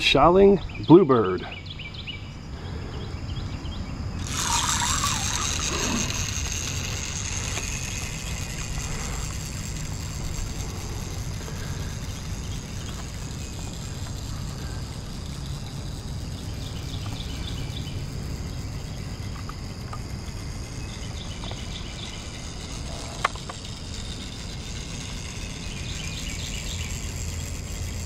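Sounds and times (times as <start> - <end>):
clockwork toy boat motor whirring: 4.0 - 28.0.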